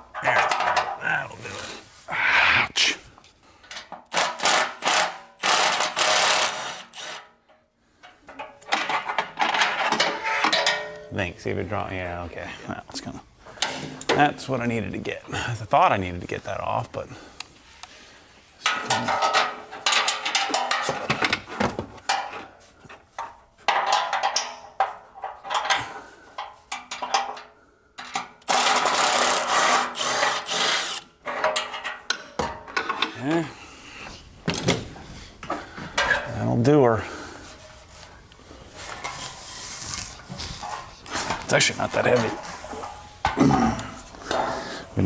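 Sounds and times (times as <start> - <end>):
cordless ratchet bursts: 4.1 - 7.3, 28.5 - 31.1.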